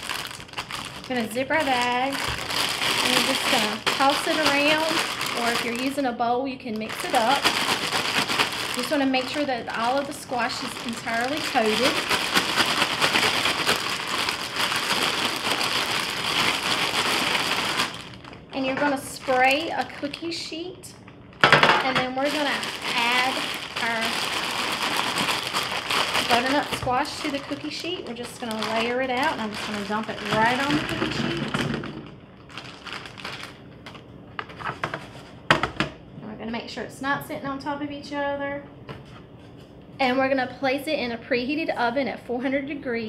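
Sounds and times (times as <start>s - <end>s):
plastic bag crinkling: 0.0s - 20.3s, 22.1s - 35.2s.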